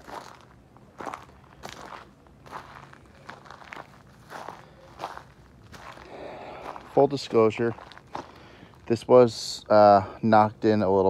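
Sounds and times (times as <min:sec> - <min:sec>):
footsteps crunching on gravel: 0:00.0 - 0:09.7.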